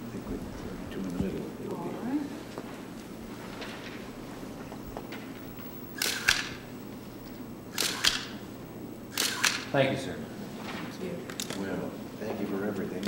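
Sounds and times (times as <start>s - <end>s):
camera shutter clicks: 6.0s - 6.6s, 7.7s - 8.4s, 9.1s - 9.7s.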